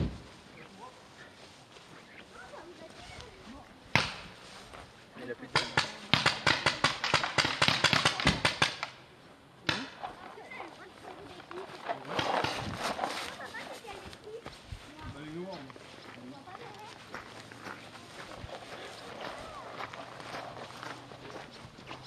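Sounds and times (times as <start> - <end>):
paintball marker firing rapidly: 5.6 - 9.0.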